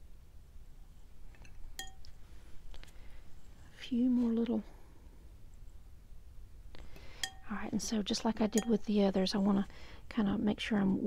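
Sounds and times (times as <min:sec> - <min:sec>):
paintbrush clinking on container: 0:01.4 - 0:02.1, 0:07.0 - 0:09.5
faint taps of brushes: 0:08.4 - 0:08.9.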